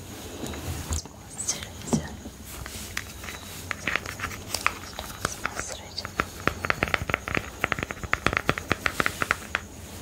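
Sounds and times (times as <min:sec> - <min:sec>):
fingernails tapping on plastic container: 0:06.0 - 0:09.7.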